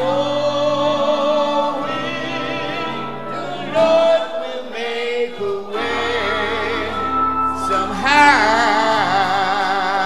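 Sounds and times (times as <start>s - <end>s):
choir singing a slow hymn: 0.0s - 10.0s.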